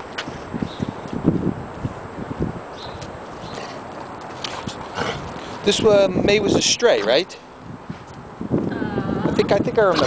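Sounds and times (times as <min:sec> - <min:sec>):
footsteps on concrete: 0:00.0 - 0:05.7.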